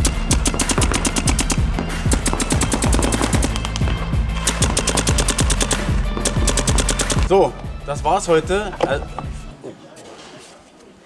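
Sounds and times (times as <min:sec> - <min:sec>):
paintball markers firing rapidly: 0:00.0 - 0:07.3
background music with bass line: 0:00.0 - 0:09.5.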